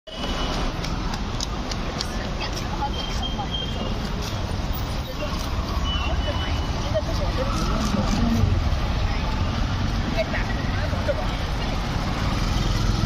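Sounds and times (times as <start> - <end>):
road traffic: 0.1 - 13.0
vehicle engines rumbling: 0.1 - 13.0.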